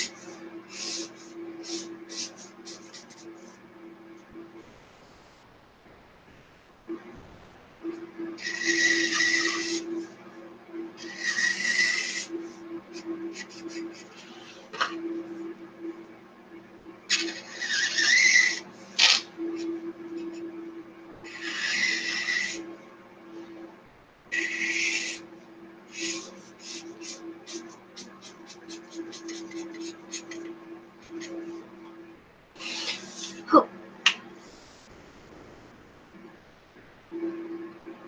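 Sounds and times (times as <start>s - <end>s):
marker squeaking on paper: 0.0s - 3.5s, 8.4s - 10.2s, 11.0s - 15.0s, 17.1s - 20.3s, 21.3s - 22.6s, 24.4s - 25.2s, 25.9s - 31.6s, 32.6s - 33.5s.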